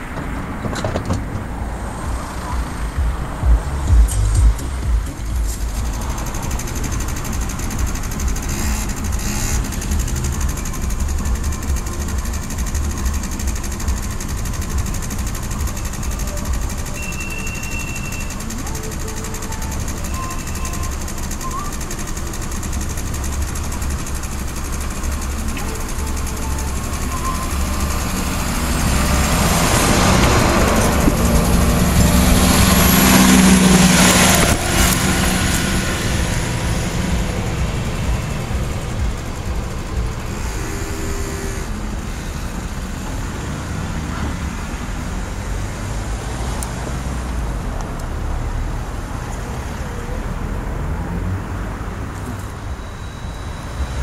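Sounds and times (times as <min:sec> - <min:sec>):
diesel railcar approaching: 0:00.0 - 0:54.0
low rumble: 0:01.4 - 0:06.6.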